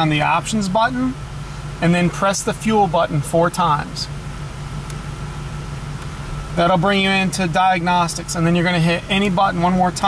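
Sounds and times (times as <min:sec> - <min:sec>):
steady low hum in car cabin: 0:00.0 - 0:10.0.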